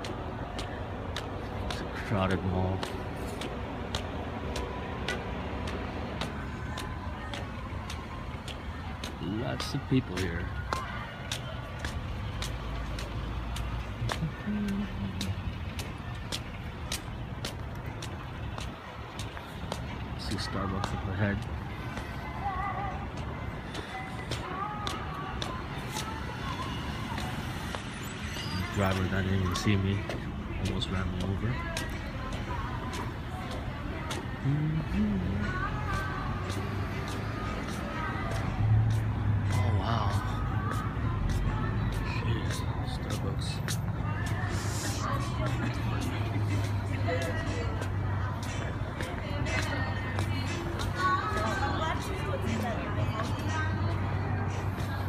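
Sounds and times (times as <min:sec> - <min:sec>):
footsteps on asphalt: 0:00.0 - 0:55.0
voices of passers-by: 0:00.0 - 0:55.0.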